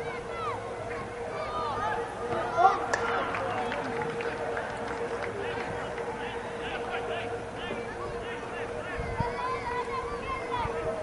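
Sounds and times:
crowd shouting and calling: 0.0 - 11.0
steady hum: 0.0 - 11.0.

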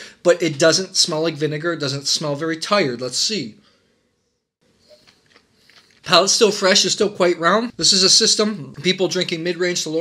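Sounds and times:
person slurping wine: 4.8 - 6.0.

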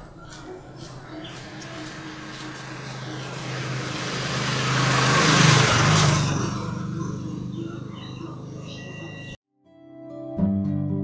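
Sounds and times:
motorcycle passing: 0.0 - 9.4.

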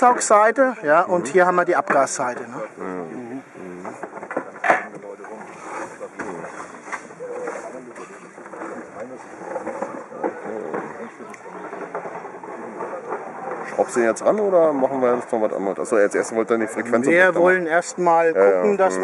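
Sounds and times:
people chattering: 0.0 - 19.0.

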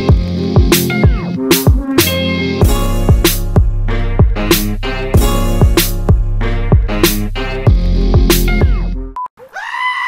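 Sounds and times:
upbeat music with drum beat: 0.0 - 9.1
sheep bleating: 9.4 - 10.0.

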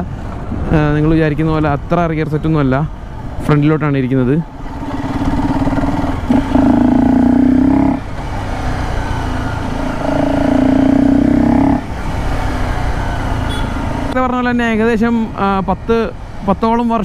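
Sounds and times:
motorcycle engine throttling: 4.8 - 8.2.

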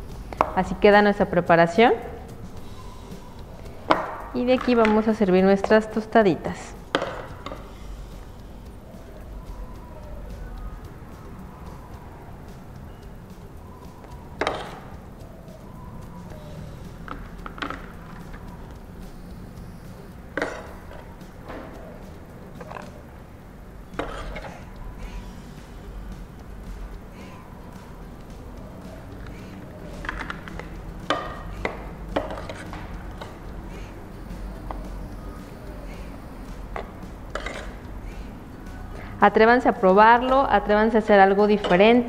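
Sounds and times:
low steady hum: 0.0 - 42.0
metal tongs clacking on bowl: 27.4 - 39.1, 39.9 - 42.0.

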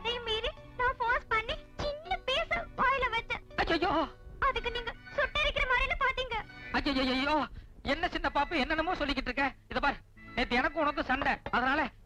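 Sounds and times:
people talking: 0.0 - 11.9.

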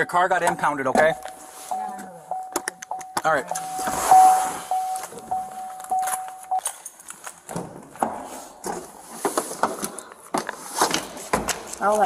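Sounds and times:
electronic tone with breaks: 0.0 - 6.6
movement noise: 3.4 - 7.4.

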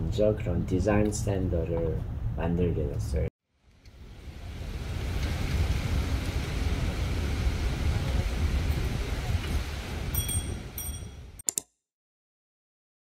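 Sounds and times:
wind on microphone: 4.2 - 11.4.

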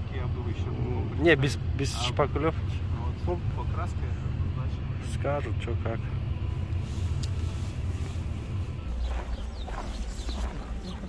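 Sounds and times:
car engine rumble inside cabin: 0.0 - 11.0
deeper low rumble: 6.0 - 11.0.

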